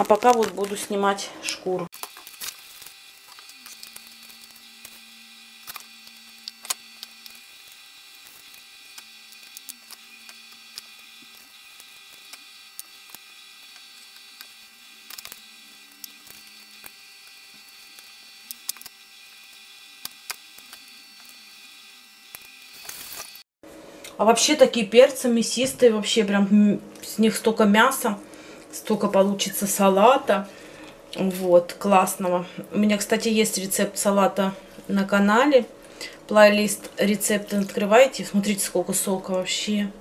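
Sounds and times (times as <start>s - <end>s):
wet squishing of pepper skins: 1.9s - 18.9s, 37.3s - 37.9s.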